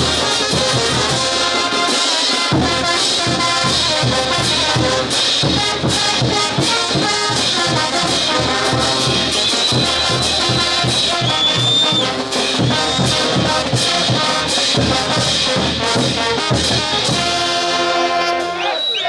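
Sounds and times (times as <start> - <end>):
brass band playing dance tune: 0.0 - 19.0
bass drum beat: 2.5 - 17.8.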